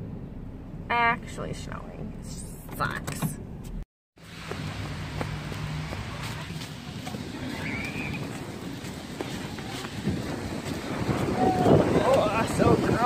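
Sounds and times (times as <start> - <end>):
footsteps on wet leafy pavement: 4.2 - 13.0
wind noise on microphone: 6.0 - 13.0.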